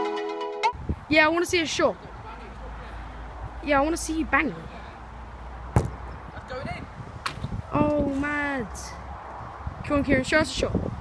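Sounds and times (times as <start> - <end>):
boot kicking football: 5.7 - 6.1.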